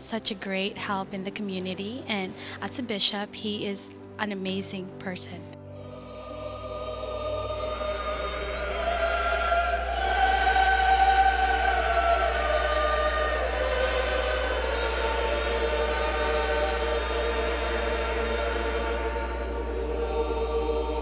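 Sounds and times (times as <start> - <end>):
choir singing sacred piece: 5.6 - 21.0
steady low hum: 5.7 - 21.0.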